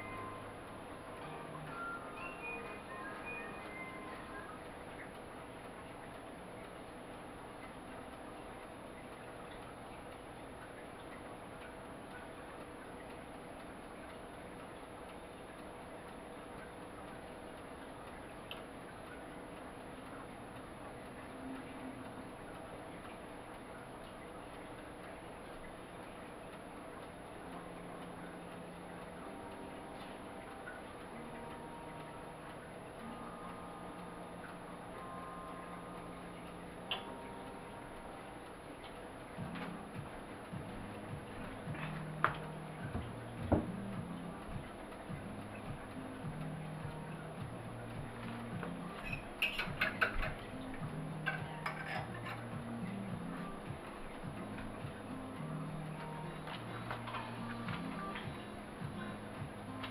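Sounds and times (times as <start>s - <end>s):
thin high-pitched whine: 0.0s - 10.0s, 27.4s - 59.9s
faint steady hum: 0.0s - 59.9s
light ticking: 0.0s - 59.9s.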